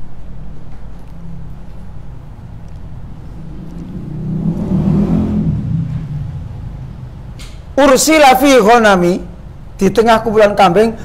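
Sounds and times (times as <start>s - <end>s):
vehicle engine passing by: 1.3s - 7.8s.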